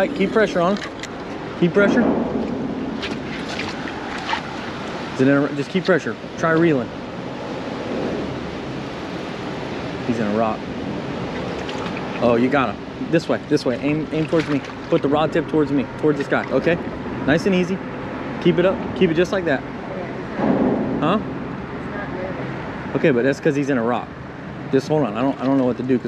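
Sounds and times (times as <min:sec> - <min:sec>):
wind on microphone: 0:00.0 - 0:05.2
choppy water against boat hull: 0:00.0 - 0:07.4, 0:10.7 - 0:19.3, 0:24.8 - 0:26.0.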